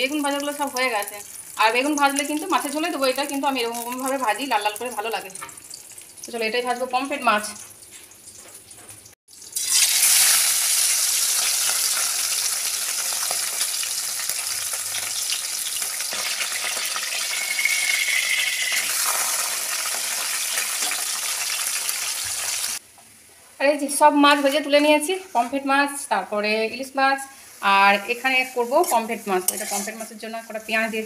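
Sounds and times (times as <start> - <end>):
fish frying in hot oil: 7.3 - 22.8.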